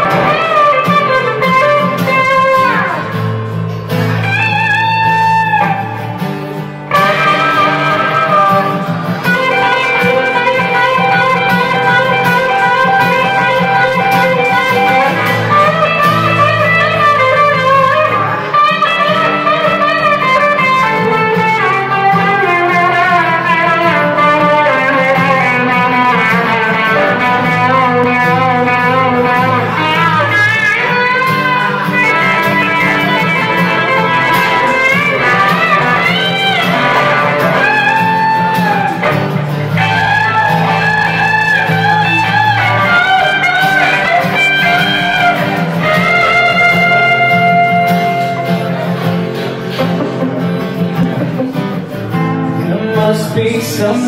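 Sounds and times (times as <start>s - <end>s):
acoustic guitar strumming chords: 0.0s - 54.0s
electric guitar lead line: 0.0s - 54.0s.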